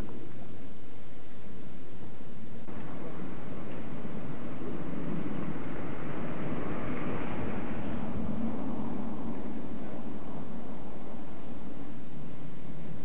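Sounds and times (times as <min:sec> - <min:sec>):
steady low rumble: 0:00.0 - 0:13.0
vehicle passing: 0:02.7 - 0:13.0.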